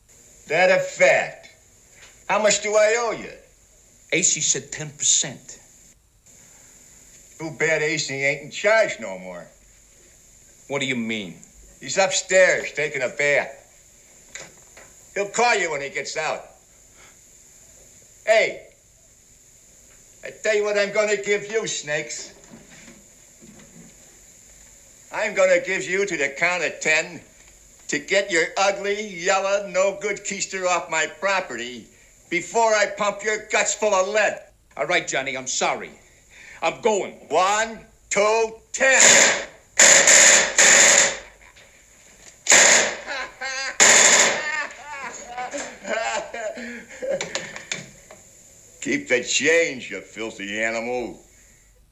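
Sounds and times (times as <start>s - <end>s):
machine-gun fire bursts: 38.9s - 41.4s, 42.5s - 43.2s, 43.8s - 44.6s
man laughing: 42.9s - 47.7s.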